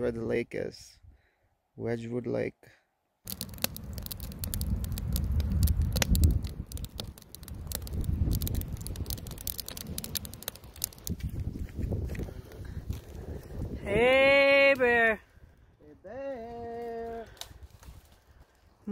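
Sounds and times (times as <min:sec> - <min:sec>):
campfire crackling: 0:03.2 - 0:18.9
low fire rumble: 0:03.3 - 0:18.9.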